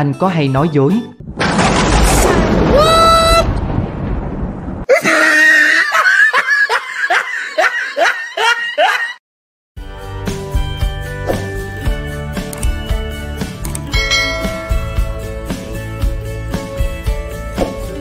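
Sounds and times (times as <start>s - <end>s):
loud cartoon blast: 1.4s - 5.4s
hearty laughter: 4.9s - 9.2s.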